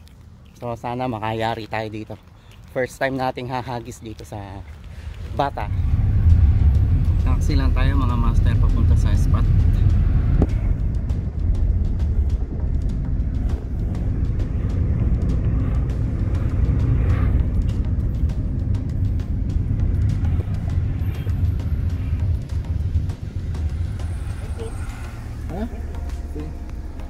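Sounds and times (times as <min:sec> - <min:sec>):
car road and engine rumble: 0:00.0 - 0:27.0
music playing: 0:05.3 - 0:27.0.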